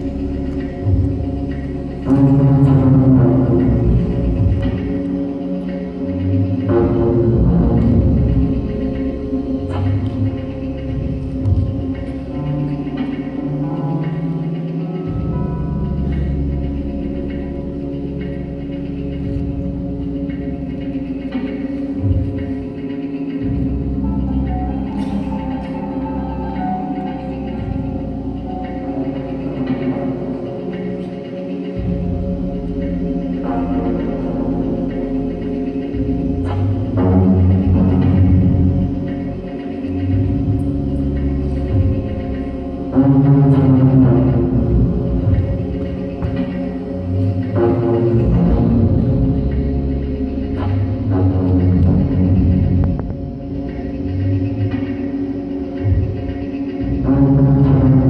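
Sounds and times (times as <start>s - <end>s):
deep bass notes: 0.0s - 58.0s
low drone: 0.0s - 58.0s.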